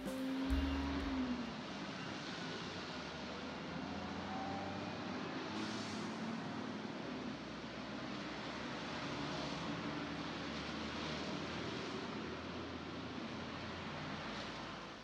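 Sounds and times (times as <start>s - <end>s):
low engine hum: 0.0s - 3.1s.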